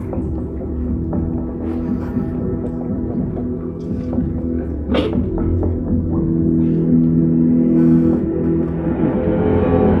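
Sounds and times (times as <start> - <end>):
film score music: 0.0 - 10.0.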